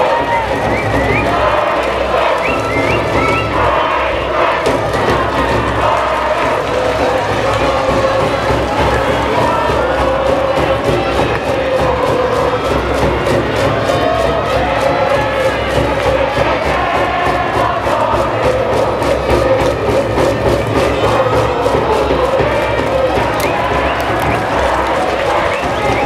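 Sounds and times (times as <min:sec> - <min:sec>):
brass band playing: 0:00.0 - 0:09.7
crowd chanting: 0:00.0 - 0:26.0.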